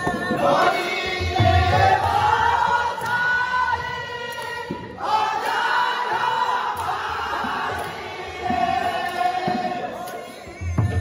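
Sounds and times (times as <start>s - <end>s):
men singing devotional song: 0.0s - 11.0s.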